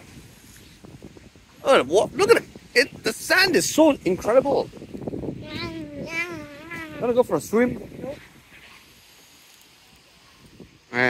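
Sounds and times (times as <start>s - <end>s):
faint outdoor background noise: 0.0s - 11.0s
voice trailing off: 5.5s - 7.3s.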